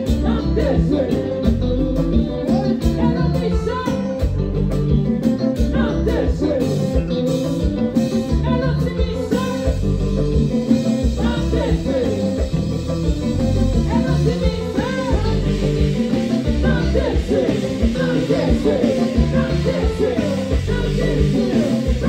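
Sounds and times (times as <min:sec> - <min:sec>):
person singing: 0:00.0 - 0:04.4, 0:05.6 - 0:07.4, 0:08.0 - 0:10.3, 0:11.0 - 0:12.8, 0:13.6 - 0:22.0
live band playing: 0:00.0 - 0:22.0.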